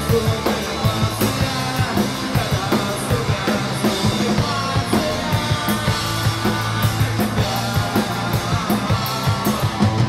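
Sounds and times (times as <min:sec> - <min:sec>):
drum kit beat: 0:00.0 - 0:10.0
electric bass: 0:00.0 - 0:10.0
electric guitar: 0:00.0 - 0:10.0.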